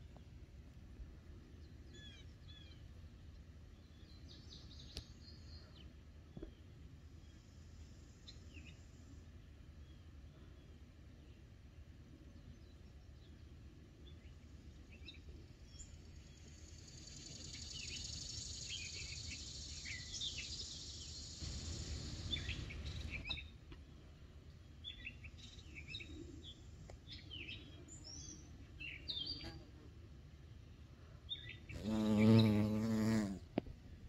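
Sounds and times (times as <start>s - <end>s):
small birds chirping: 1.6s - 8.9s, 12.3s - 29.7s, 30.3s - 33.5s
bee wings buzzing: 31.8s - 33.6s.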